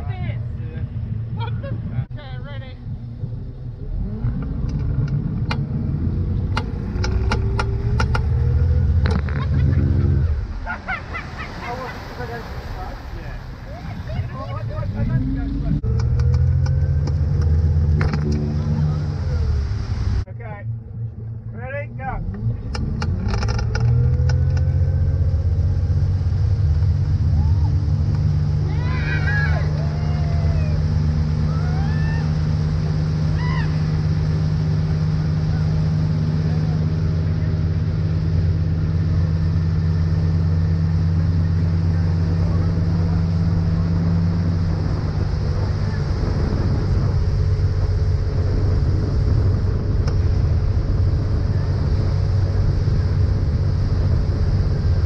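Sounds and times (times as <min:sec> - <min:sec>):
rush of boat wake: 0:00.0 - 0:20.6, 0:21.2 - 0:55.0
boat engine throttling up: 0:00.5 - 0:55.0.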